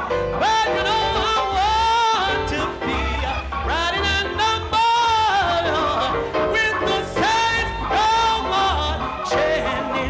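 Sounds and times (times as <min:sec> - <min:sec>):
piano: 0:00.0 - 0:10.0
person singing gospel: 0:00.2 - 0:10.0.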